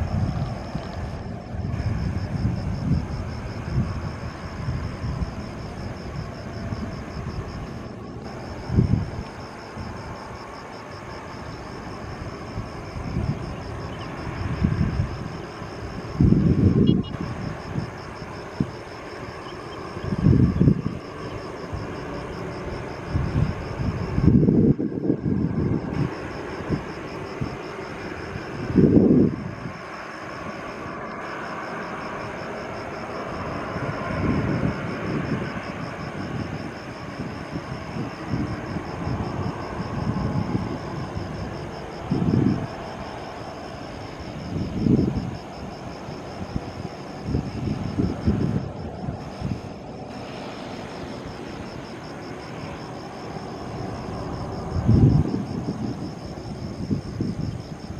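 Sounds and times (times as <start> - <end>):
distant jet engines: 0.0 - 57.9.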